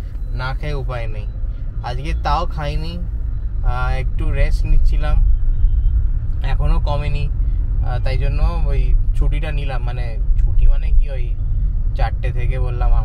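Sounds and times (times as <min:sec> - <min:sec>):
car engine and road rumble: 0:00.0 - 0:13.0
man talking: 0:00.3 - 0:05.2, 0:06.4 - 0:11.4, 0:12.0 - 0:13.0.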